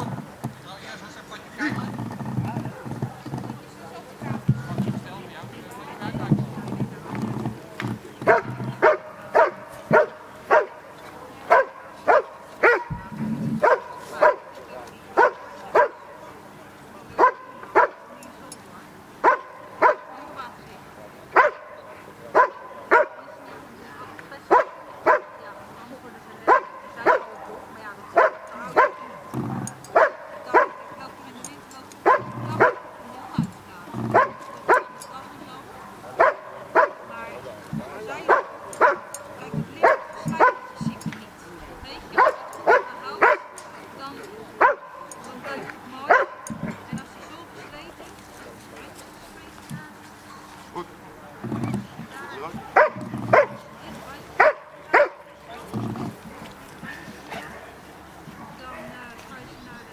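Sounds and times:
dog barking sharply: 0:08.3 - 0:10.8, 0:11.5 - 0:14.5, 0:15.2 - 0:16.0, 0:17.2 - 0:18.0, 0:19.2 - 0:20.1, 0:21.4 - 0:21.7, 0:22.4 - 0:23.2, 0:28.2 - 0:29.2, 0:29.9 - 0:30.9, 0:36.2 - 0:37.0, 0:38.3 - 0:39.1, 0:42.2 - 0:43.6, 0:52.6 - 0:53.6.

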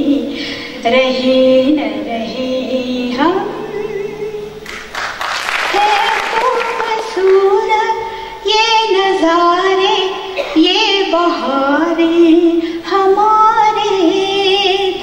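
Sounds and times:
elderly woman singing: 0:05.6 - 0:15.0.

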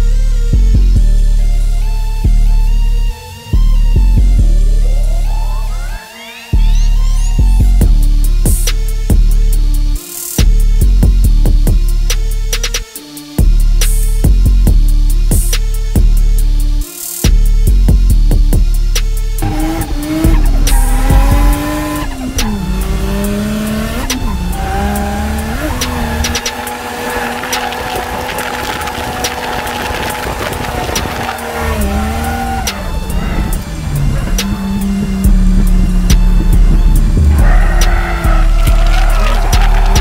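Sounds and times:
music with heavy bass: 0:00.0 - 0:40.0
turbocharged car engine revving: 0:17.4 - 0:40.0
tyres squealing: 0:19.4 - 0:35.3, 0:36.8 - 0:40.0.

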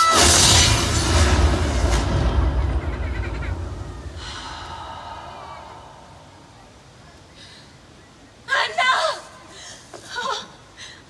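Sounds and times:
fireworks crackle hiss: 0:00.0 - 0:03.0
fireworks booms echoing: 0:00.1 - 0:05.0.

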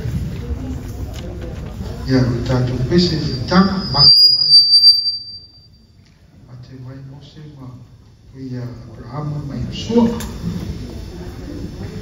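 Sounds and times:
faint voices: 0:00.0 - 0:04.4, 0:06.2 - 0:12.0
long high whistle: 0:03.2 - 0:05.8.

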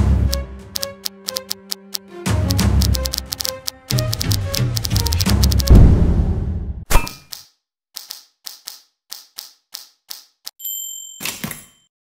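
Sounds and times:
typewriter keys clacking: 0:00.8 - 0:05.7
typewriter bell ding: 0:10.6 - 0:11.9.

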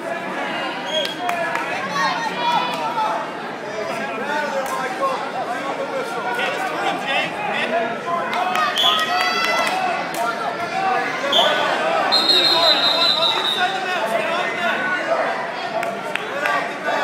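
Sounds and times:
crowd talking and calling out: 0:00.0 - 0:17.0.

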